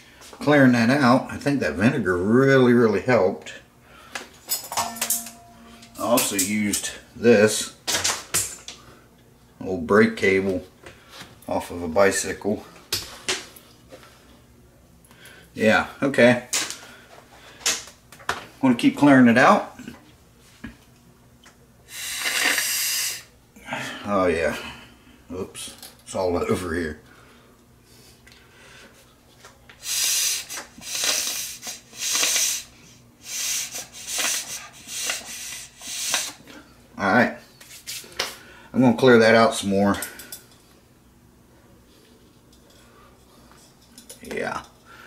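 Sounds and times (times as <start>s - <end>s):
breath blown through rubber hose: 21.9s - 23.3s, 29.8s - 36.4s
wire clicking and scraping in fitting: 33.7s - 36.4s.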